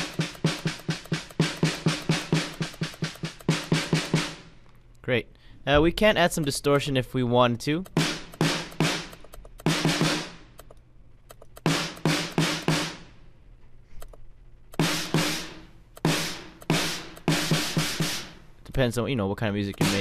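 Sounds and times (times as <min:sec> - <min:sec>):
distorted snare drum: 0:00.0 - 0:04.5, 0:07.9 - 0:10.5, 0:11.6 - 0:13.1, 0:14.8 - 0:18.4, 0:19.8 - 0:20.0
programmed drum pattern: 0:00.0 - 0:04.5, 0:07.8 - 0:13.1, 0:14.7 - 0:18.9, 0:19.6 - 0:20.0.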